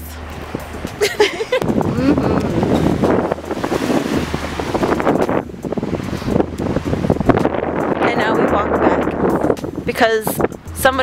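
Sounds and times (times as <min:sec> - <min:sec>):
wind buffeting microphone: 0:00.2 - 0:11.0.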